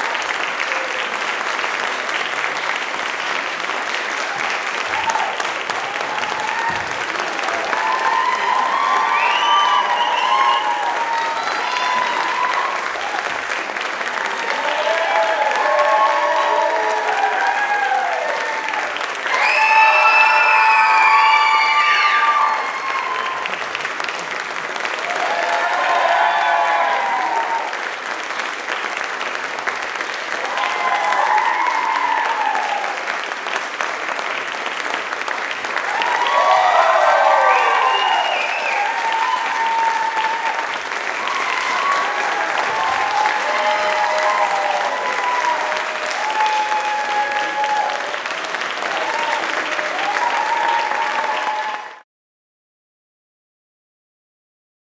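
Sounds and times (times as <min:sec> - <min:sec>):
audience applauding: 0:00.0 - 0:52.0.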